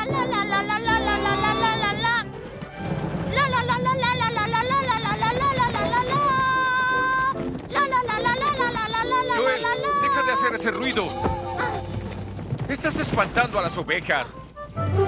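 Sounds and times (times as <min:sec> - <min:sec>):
boy singing la la: 0:00.0 - 0:02.2, 0:03.3 - 0:10.4
background film music: 0:00.0 - 0:15.0.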